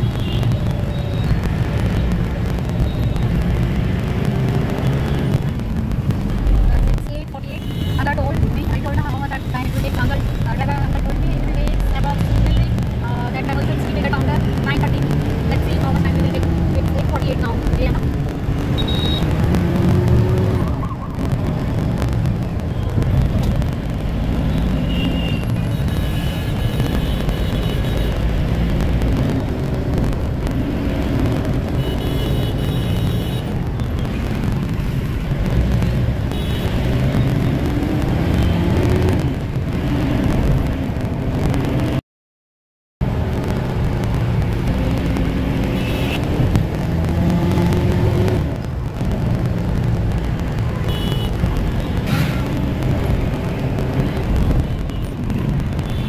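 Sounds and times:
van engine and road rumble: 0.0 - 42.0, 43.0 - 56.0
indistinct voices: 6.3 - 18.2.

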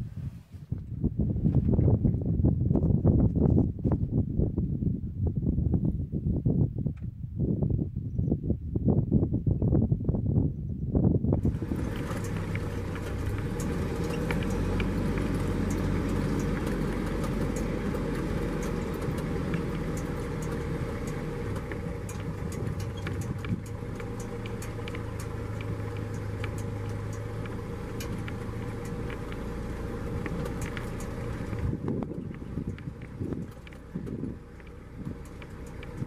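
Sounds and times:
vehicle engine low hum: 0.0 - 36.0
small clicks and rattles: 11.4 - 36.0.

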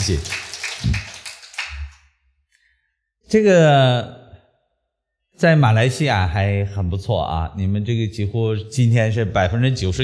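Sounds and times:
audience applause: 0.0 - 2.0.

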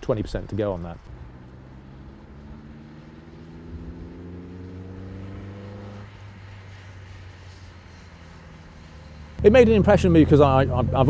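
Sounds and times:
sports car engine accelerating: 1.0 - 11.0.

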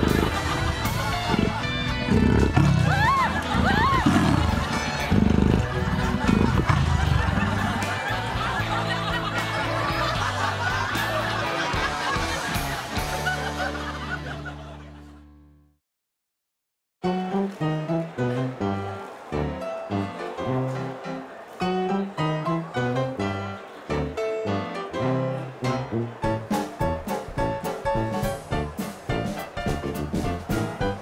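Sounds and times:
background music: 0.0 - 15.3, 17.0 - 31.0
bursts of laughter: 0.0 - 15.3
low rough growls: 1.2 - 2.9, 3.6 - 7.8.

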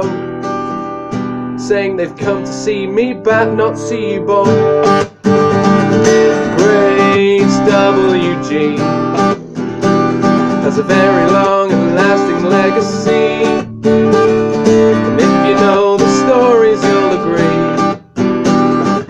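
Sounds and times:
acoustic guitar strummed: 0.0 - 19.0
man singing: 1.6 - 4.9, 6.2 - 18.0.

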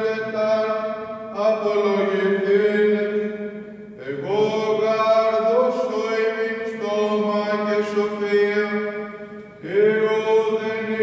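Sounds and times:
priest chanting: 0.0 - 11.0.

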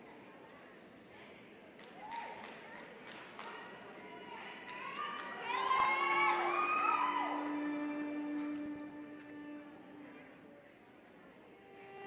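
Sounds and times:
audience cheering and whooping: 5.4 - 8.3.

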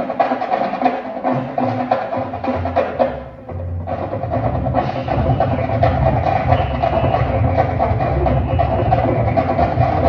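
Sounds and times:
drums: 0.0 - 10.0
marching band playing: 0.0 - 10.0.

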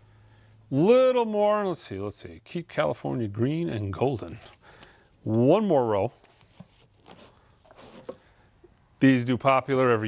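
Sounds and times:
record sleeves rustling: 4.1 - 8.4, 9.3 - 10.0.

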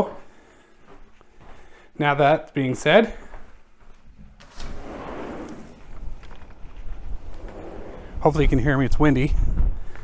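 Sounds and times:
wind buffeting microphone: 5.0 - 10.0.

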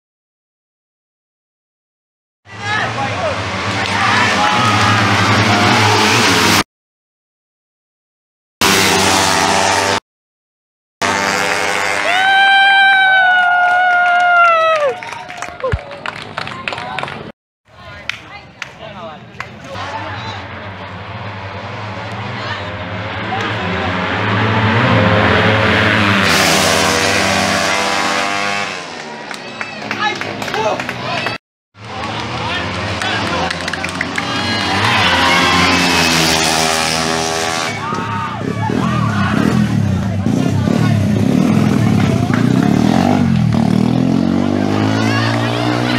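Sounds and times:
crowd voices: 2.5 - 6.6, 14.8 - 45.9
racing motorcycle engines: 2.5 - 6.6, 8.6 - 10.0, 11.0 - 13.6, 18.6 - 45.9.

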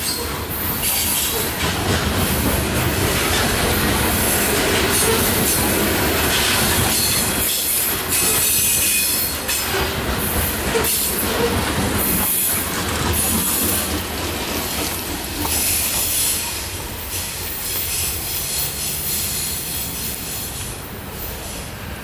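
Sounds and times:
train wheels rumbling on rails: 0.0 - 22.0.

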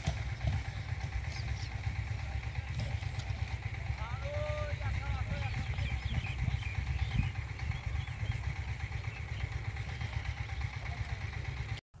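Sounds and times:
wind on microphone: 4.7 - 8.5.

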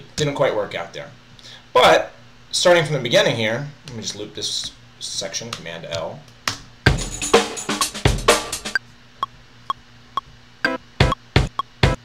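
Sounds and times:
chopped drum loop: 6.9 - 8.8, 11.0 - 12.0.

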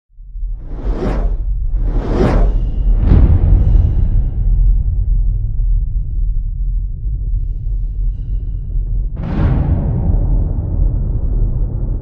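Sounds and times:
deep rumble: 0.1 - 12.0
cinematic whoosh: 0.5 - 4.9.

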